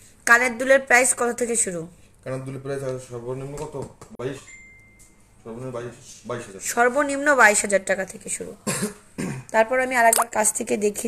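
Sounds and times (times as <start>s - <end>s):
person coughing: 8.6s - 9.5s.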